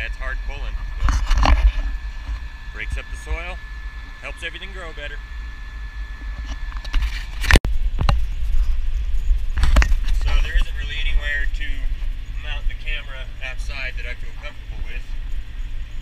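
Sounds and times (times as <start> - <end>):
man talking: 2.8 - 3.6, 4.2 - 5.2, 10.1 - 15.2
tractor engine rumbling: 6.1 - 16.0.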